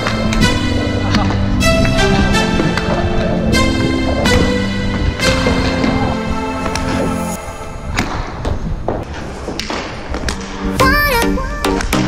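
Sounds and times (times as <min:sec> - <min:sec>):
skate wheels rolling: 0:00.0 - 0:07.4, 0:08.0 - 0:10.8.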